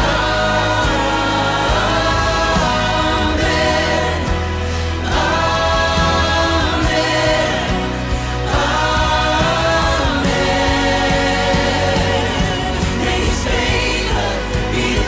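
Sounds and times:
choir singing gospel refrain: 0.0s - 15.0s
low backing music: 0.0s - 15.0s.

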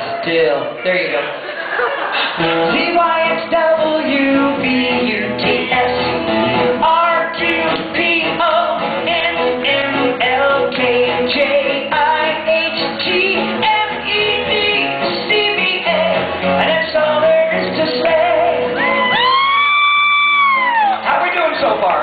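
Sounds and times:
loud backing music: 2.0s - 22.0s
person singing: 2.4s - 19.5s.

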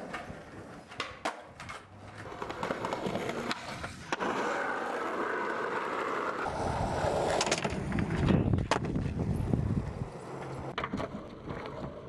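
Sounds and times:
skateboard wheels rolling on pavement: 0.0s - 12.0s.

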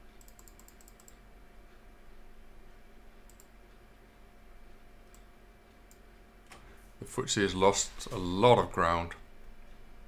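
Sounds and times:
low steady hum: 0.0s - 10.0s
computer mouse clicking: 0.2s - 1.2s, 3.3s - 3.8s, 5.0s - 6.6s.

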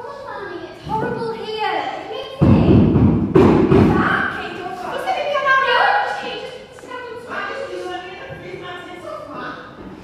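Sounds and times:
loud thuds on wooden stage: 2.4s - 4.4s.

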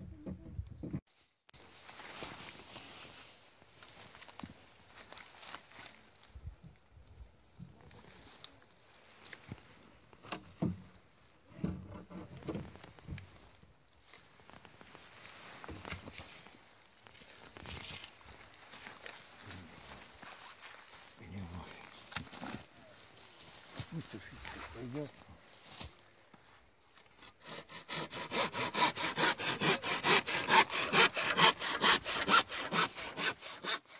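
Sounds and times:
hand saw cutting wood: 27.2s - 33.9s.

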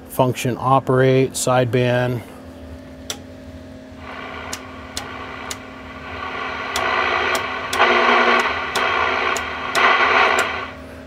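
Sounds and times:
low hum: 3.9s - 11.0s
faint ticking: 4.0s - 10.7s
radio static hissing: 4.0s - 11.0s.

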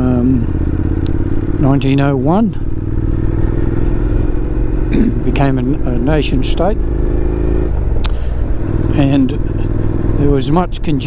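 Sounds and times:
low wind rumble: 0.0s - 11.0s
motorcycle engine running: 0.0s - 11.0s.

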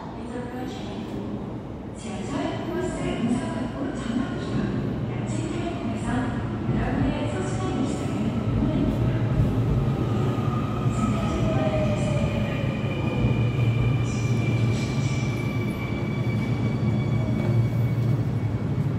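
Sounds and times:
low rumble of train wheels on rail: 0.0s - 18.9s.

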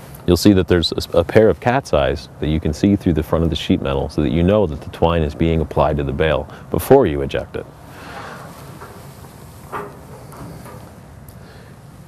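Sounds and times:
metal cover rubbing rush: 8.0s - 11.3s.

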